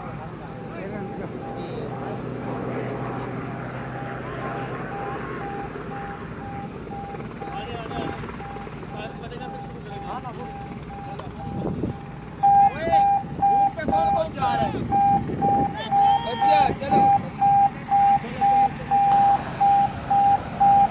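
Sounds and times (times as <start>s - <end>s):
helicopter flying overhead: 0.0s - 20.9s
people shouting and talking: 8.2s - 19.0s.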